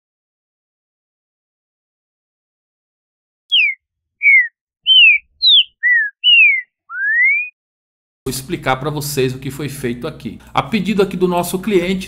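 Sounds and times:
bird whistled song: 0:03.5 - 0:07.6.

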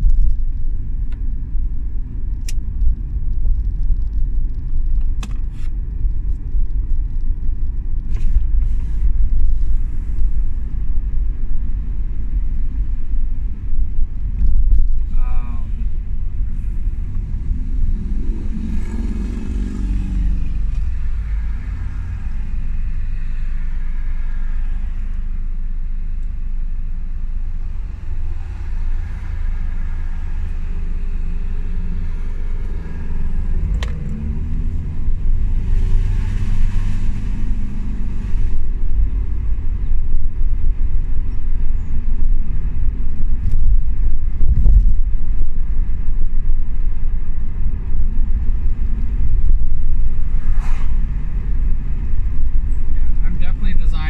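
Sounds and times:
car engine rumble: 0:00.0 - 0:54.0
road noise inside car: 0:00.0 - 0:54.0.

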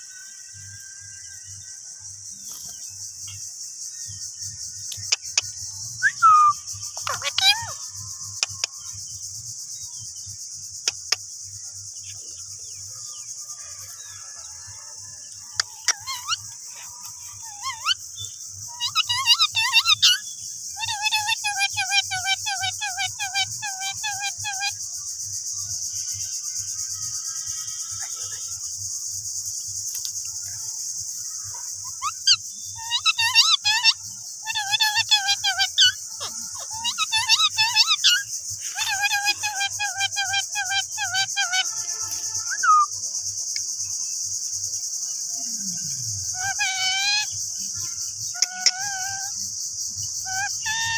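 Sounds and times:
high insect buzz: 0:00.0 - 0:50.9
parakeets chattering: 0:06.2 - 0:09.0, 0:15.5 - 0:24.8, 0:31.5 - 0:42.8, 0:46.2 - 0:50.9.

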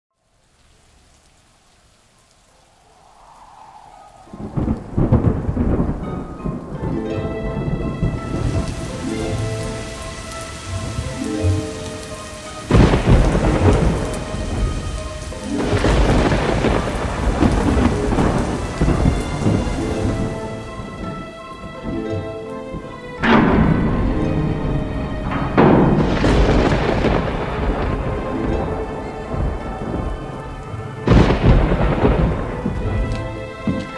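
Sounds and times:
steady rain: 0:00.1 - 0:33.9
rolling thunder: 0:02.4 - 0:33.9
loud thunder claps: 0:03.0 - 0:33.9
sustained musical tones: 0:04.5 - 0:33.9.

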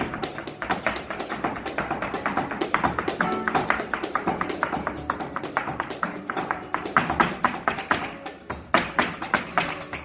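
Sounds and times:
handclaps: 0:00.0 - 0:10.0
shoes tapping on wooden stage: 0:00.0 - 0:10.0.

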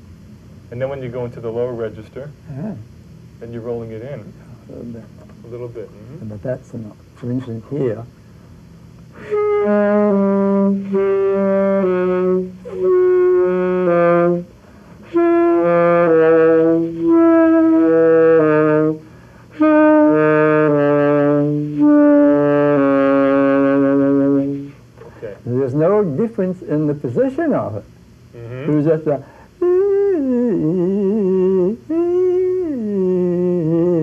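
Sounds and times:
saxophone melody: 0:09.1 - 0:24.8, 0:28.4 - 0:29.0, 0:29.6 - 0:34.0.

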